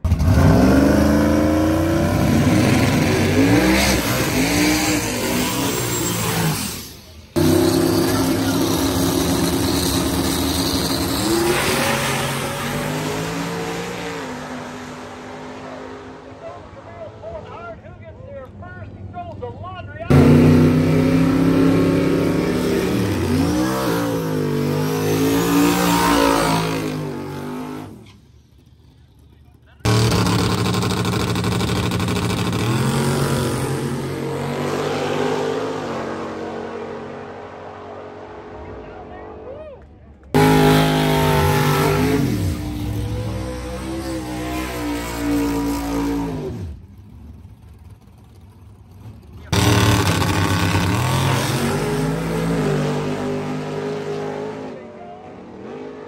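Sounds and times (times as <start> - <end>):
race cars launching and speeding away: 0.0 - 17.9, 20.0 - 56.0
race car engines revving: 0.0 - 56.0.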